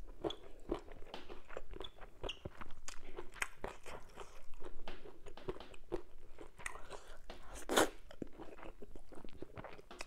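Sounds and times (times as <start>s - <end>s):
chewing meat: 0.0s - 10.0s.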